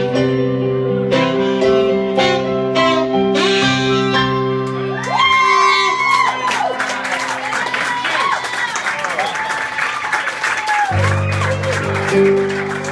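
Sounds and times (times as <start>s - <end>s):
saxophone sustained notes: 0.0s - 9.5s, 10.9s - 12.9s
audience whooping and cheering: 4.7s - 12.9s.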